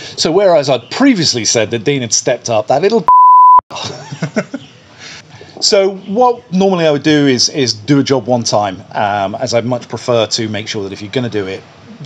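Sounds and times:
censor bleep: 3.1s - 3.6s
man laughing: 3.7s - 4.6s.

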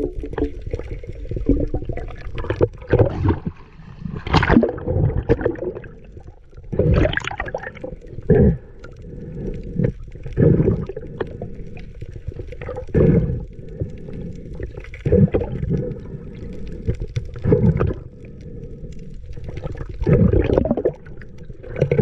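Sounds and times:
muffled underwater rushing water: 0.0s - 22.0s.

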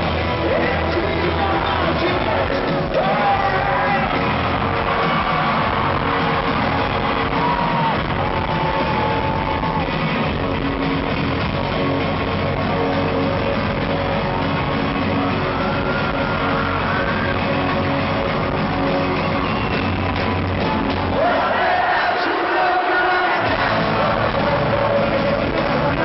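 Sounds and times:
live rock band through pa: 0.0s - 26.0s.

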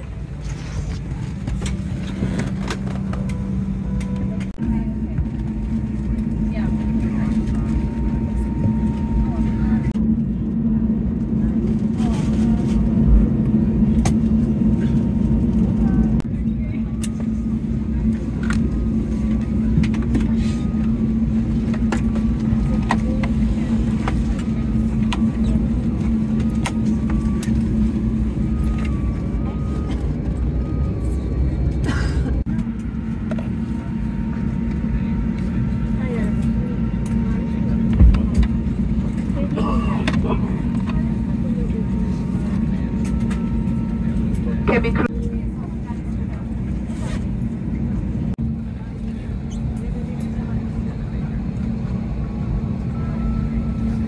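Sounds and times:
aircraft cabin air-conditioning drone: 0.0s - 54.0s.

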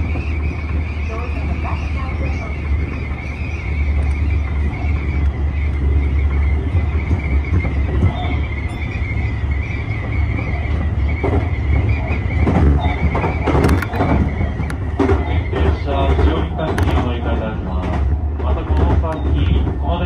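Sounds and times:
train low rumble: 0.0s - 20.0s.

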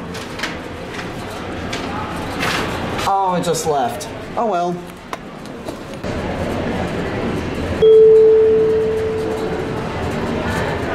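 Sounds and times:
steady background noise: 0.0s - 10.9s
elevator chime ding: 7.8s - 9.6s.

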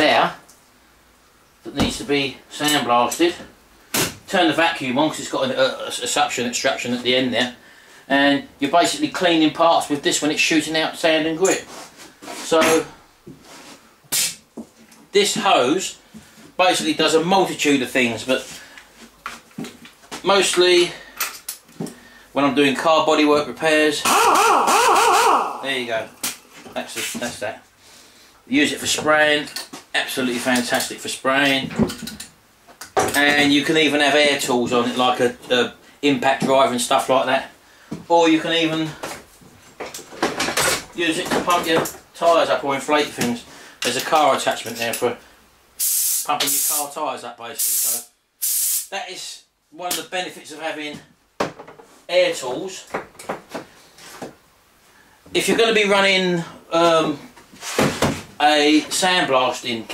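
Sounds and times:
compressed air hiss: 45.8s - 46.9s, 47.6s - 48.9s.

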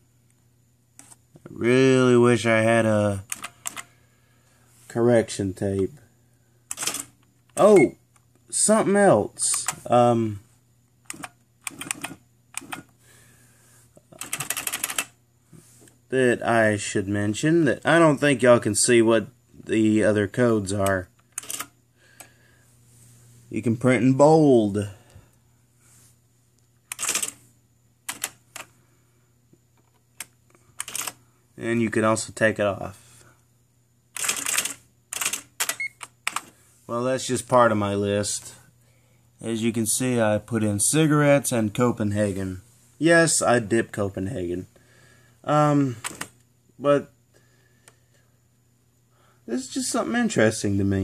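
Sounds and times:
electronic typewriter typing: 3.2s - 3.9s, 6.7s - 7.8s, 11.1s - 12.9s, 14.1s - 15.2s, 21.3s - 21.7s, 26.9s - 27.4s, 28.1s - 28.7s, 30.8s - 31.2s, 34.2s - 36.5s.

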